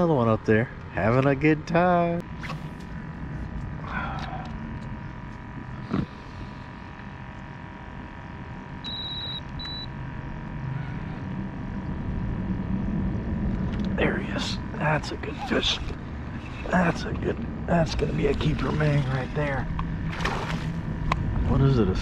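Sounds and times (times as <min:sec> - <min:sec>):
faint high hum: 0:00.0 - 0:22.0
low rumble: 0:02.2 - 0:22.0.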